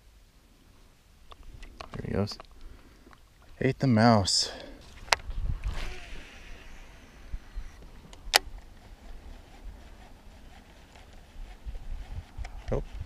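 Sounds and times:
fishing line hissing off reel: 5.6 - 7.9.

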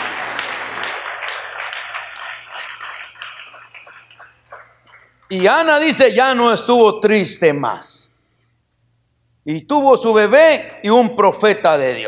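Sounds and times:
rhythmic clapping: 0.0 - 5.5
high metallic jingle: 1.0 - 6.1.

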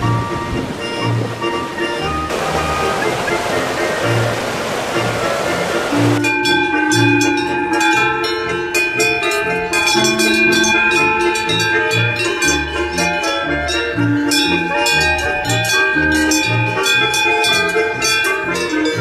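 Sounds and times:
folk music with bass line: 0.0 - 19.0
rushing water: 0.0 - 19.0
cowbell clanking: 6.1 - 19.0.

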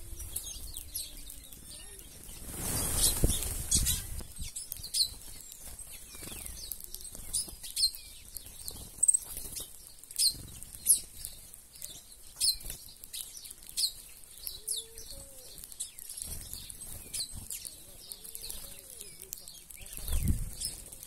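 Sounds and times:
small birds chirping: 0.0 - 21.0
bird wing flutters: 2.0 - 4.4
soft rustles: 2.0 - 7.5.

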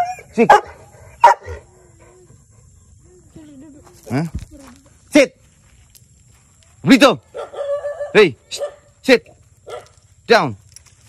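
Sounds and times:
dog barking: 0.0 - 1.7, 7.3 - 8.9, 9.6 - 10.0.

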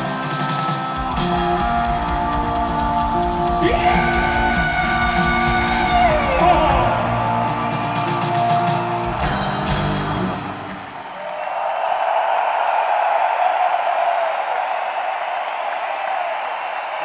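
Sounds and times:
rock band final chord: 0.0 - 10.9
crowd cheering and applauding: 0.0 - 17.0.

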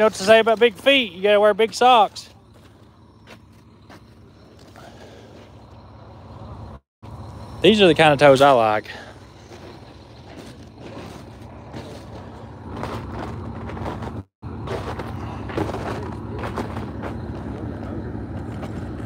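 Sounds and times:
diesel truck engine idling: 0.0 - 19.0.

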